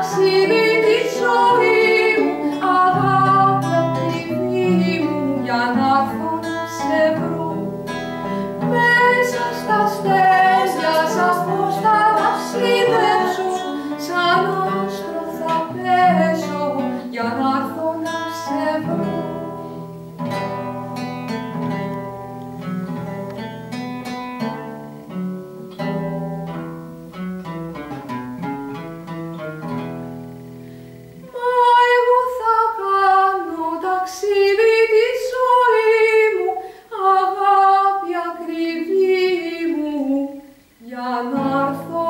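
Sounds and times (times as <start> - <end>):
woman singing: 0.0 - 19.8, 31.2 - 42.0
classical guitar plucked notes: 0.0 - 42.0.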